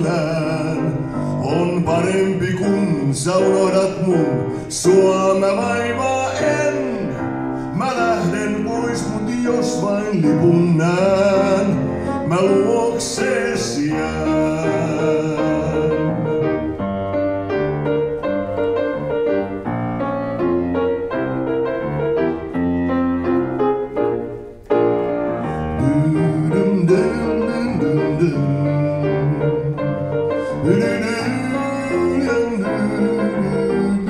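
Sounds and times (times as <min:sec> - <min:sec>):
man singing: 0:00.0 - 0:16.8, 0:25.4 - 0:34.0
grand piano playing: 0:00.0 - 0:34.0.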